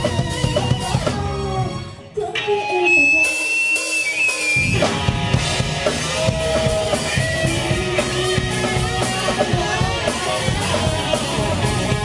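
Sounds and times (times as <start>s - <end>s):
live rock band playing: 0.0s - 12.0s
held high note: 2.4s - 5.0s.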